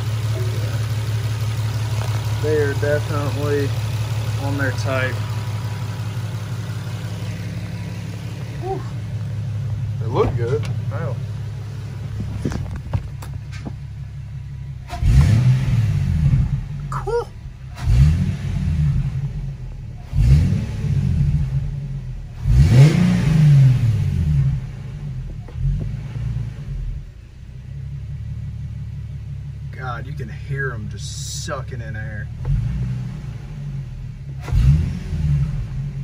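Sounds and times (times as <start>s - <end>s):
car engine idling and revving: 0.0s - 36.0s.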